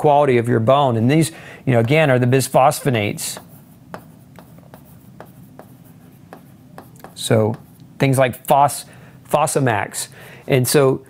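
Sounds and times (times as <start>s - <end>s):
writing strokes on a board: 1.8s - 7.8s.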